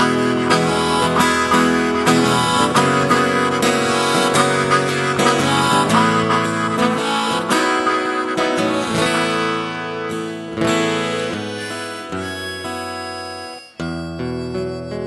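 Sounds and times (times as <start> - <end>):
harmonica: 0.0 - 15.0
strummed acoustic guitar: 0.0 - 15.0.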